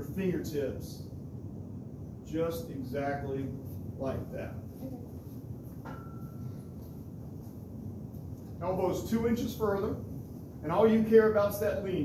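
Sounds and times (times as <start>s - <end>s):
low room rumble: 0.0s - 12.0s
faint high ring: 5.8s - 6.8s.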